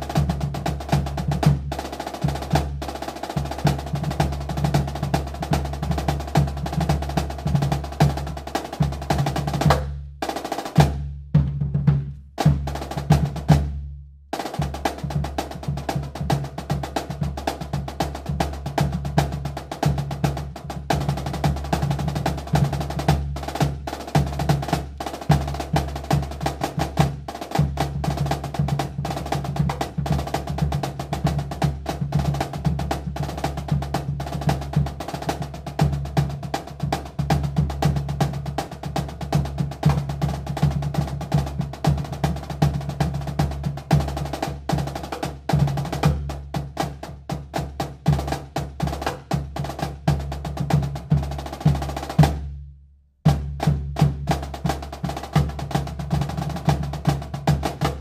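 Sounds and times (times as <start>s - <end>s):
snare drum rolls: 0.0s - 13.8s, 14.4s - 52.5s, 53.3s - 58.0s
bass drum beat: 0.0s - 58.0s.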